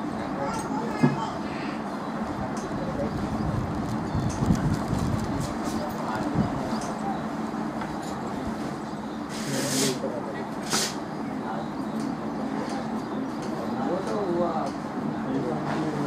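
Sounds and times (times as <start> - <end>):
outdoor background rumble: 0.0 - 16.0
short hissing noises: 9.3 - 10.0, 10.6 - 11.1.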